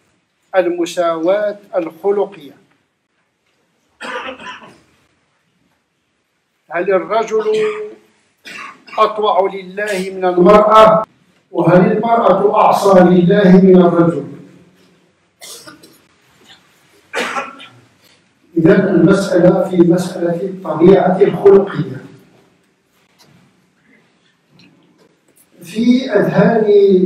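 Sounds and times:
people speaking: 0.6 - 2.7, 6.7 - 8.0, 8.9 - 14.4, 18.6 - 22.2, 25.6 - 27.0
man coughing: 4.0 - 4.9, 7.4 - 9.2, 9.8 - 10.2, 15.4 - 16.0, 17.1 - 17.8.

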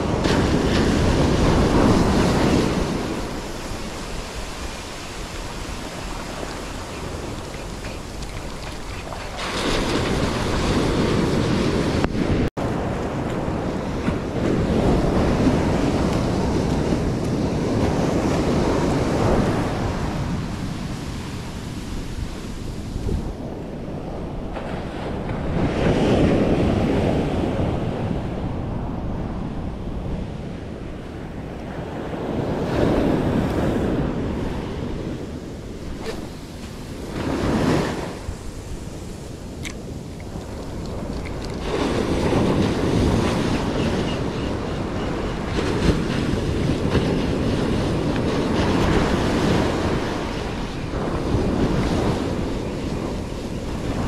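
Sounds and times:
ocean surf breaking on a beach: 0.0 - 54.0
wind buffeting the microphone: 0.0 - 54.0.

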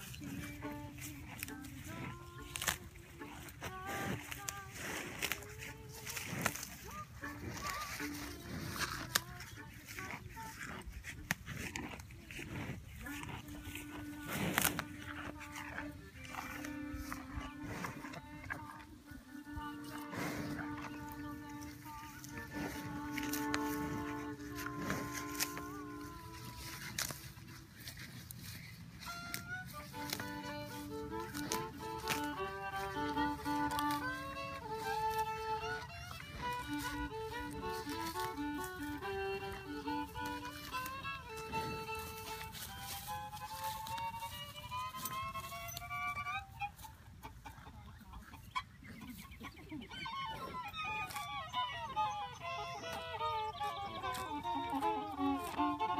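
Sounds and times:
solo fiddle playing: 0.0 - 48.8, 49.8 - 55.9
cows chewing grass: 0.0 - 55.9.

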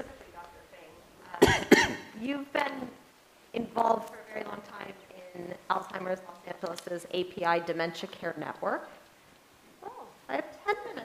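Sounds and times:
person coughing: 1.4 - 2.1.

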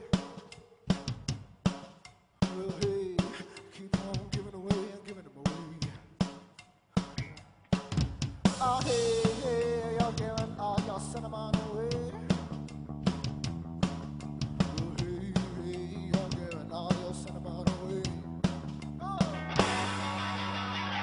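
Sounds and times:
rock band playing live: 7.0 - 21.0.

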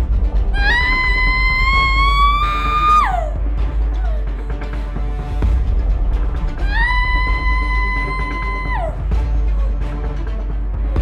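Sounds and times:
background music: 0.0 - 11.0
woman screaming: 0.6 - 3.4, 6.6 - 9.0.

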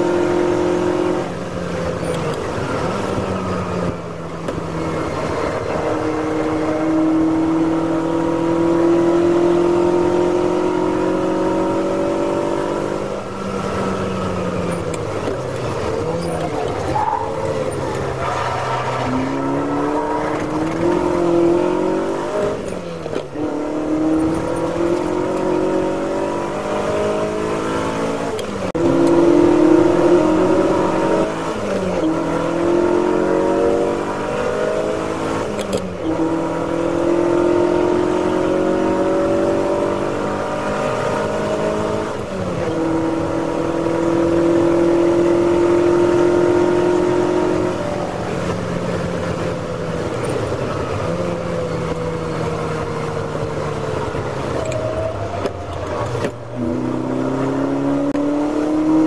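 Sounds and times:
car engine at racing revs: 0.0 - 59.0.

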